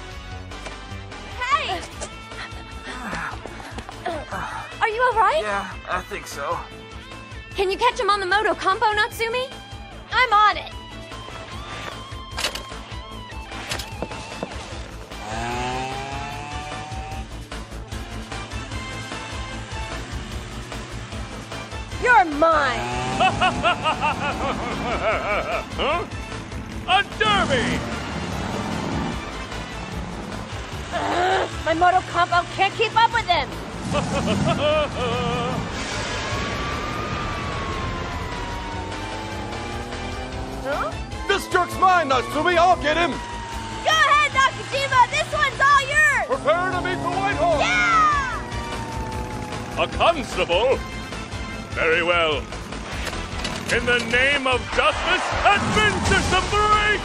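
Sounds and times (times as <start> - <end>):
background music: 0.0 - 57.0
scooter engine revving: 14.0 - 17.6, 18.3 - 54.8
police siren wailing: 22.2 - 26.4, 34.5 - 51.7.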